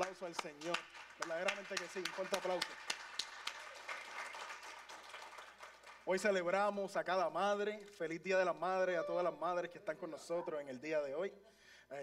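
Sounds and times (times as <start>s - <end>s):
congregation applauding: 0.0s - 6.6s.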